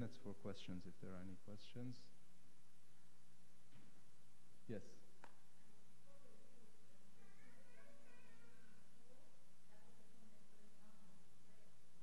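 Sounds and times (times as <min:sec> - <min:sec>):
faint distant voice speaking: 0:05.6 - 0:12.0.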